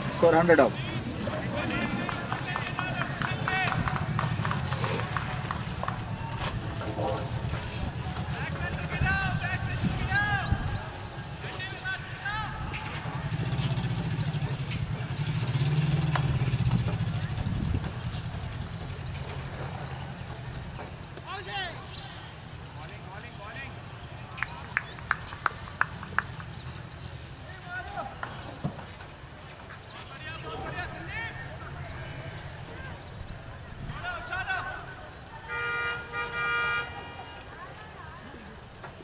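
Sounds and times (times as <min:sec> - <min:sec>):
people calling and shouting: 0:00.0 - 0:39.0.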